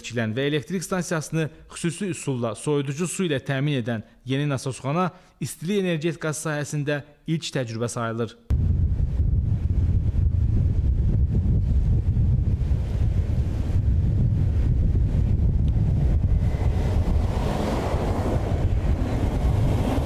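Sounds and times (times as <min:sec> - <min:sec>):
wind buffeting microphone: 0:08.5 - 0:20.0.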